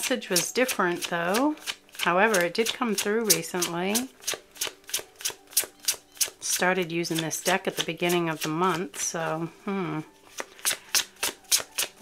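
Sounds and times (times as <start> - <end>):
cards shuffled by hand: 0.3 - 6.4, 7.1 - 9.3, 10.1 - 12.0.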